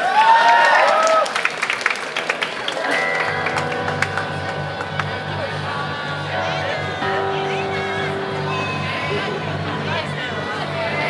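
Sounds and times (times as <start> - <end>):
held electric guitar note: 2.9 - 11.0
low bass notes repeating: 3.0 - 11.0.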